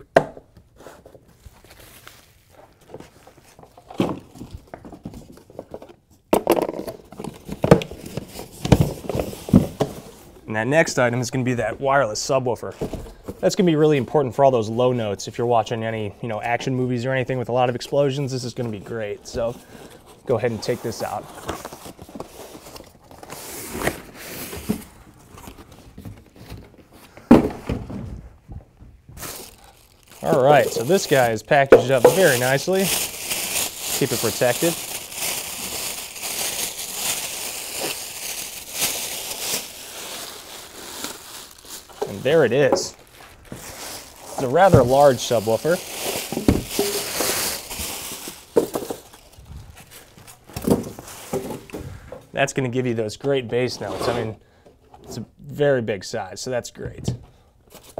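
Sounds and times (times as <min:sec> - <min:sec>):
styrofoam pieces rustling: 0:01.3 - 0:05.9, 0:18.3 - 0:25.2, 0:29.2 - 0:51.7
box thumping down: 0:27.2 - 0:28.2
cardboard box scraping rustle: 0:53.7 - 0:54.3.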